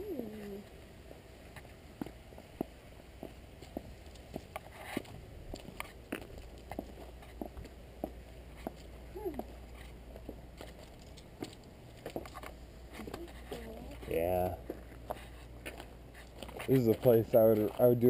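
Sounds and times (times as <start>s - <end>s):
footsteps on garden path: 0.2s - 18.0s.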